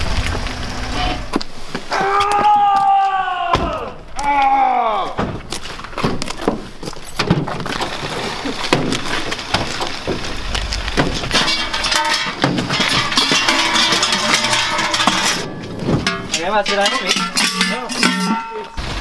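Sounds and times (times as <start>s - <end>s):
metallic knocks: 11.0s - 18.8s
costume bells clanking and jangling: 11.3s - 18.8s.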